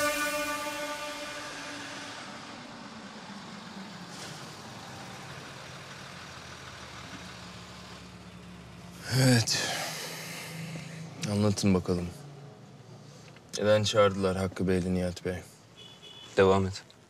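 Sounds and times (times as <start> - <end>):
engine idling: 0.0 - 11.2
car driving up and stopping: 1.7 - 11.2.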